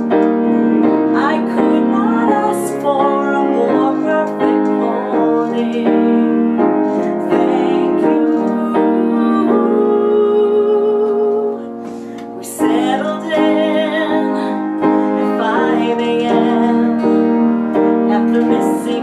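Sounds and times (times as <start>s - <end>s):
acoustic guitar: 0.0s - 19.0s
piano: 0.0s - 19.0s
woman singing slow song: 0.0s - 19.0s.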